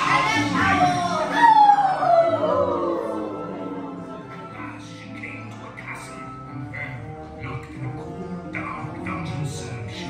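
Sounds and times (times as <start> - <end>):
background music: 0.0 - 10.0
wolves howling: 0.2 - 4.2.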